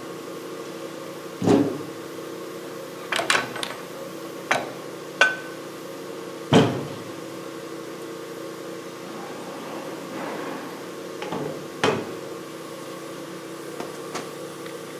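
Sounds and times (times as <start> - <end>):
steady low hum: 3.9 - 14.6.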